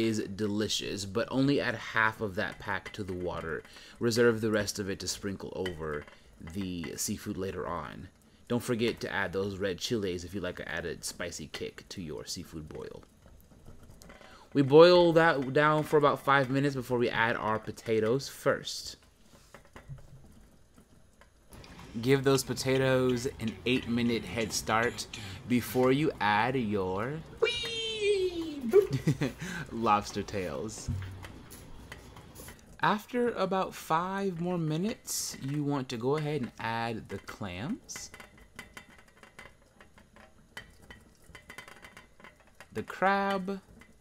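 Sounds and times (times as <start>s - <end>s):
broth bubbling in a pot: 0.0s - 44.0s.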